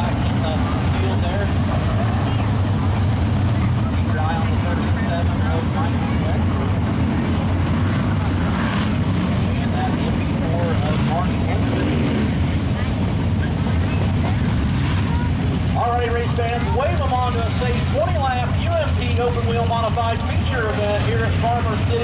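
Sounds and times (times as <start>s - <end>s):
race car engines rumbling: 0.0s - 22.0s.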